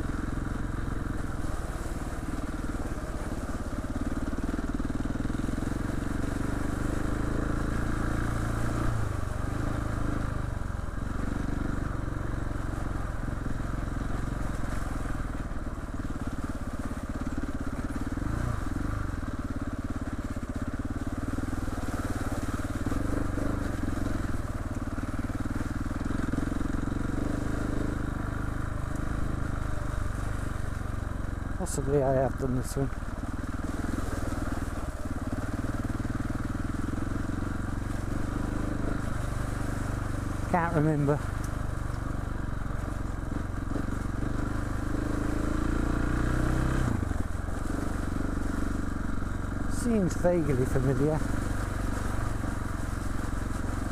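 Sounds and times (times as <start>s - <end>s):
motorcycle engine at low revs: 0.0s - 53.9s.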